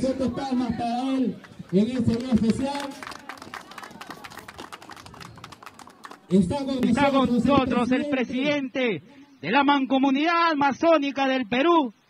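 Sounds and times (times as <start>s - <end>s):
crowd applauding: 1.4s - 6.5s.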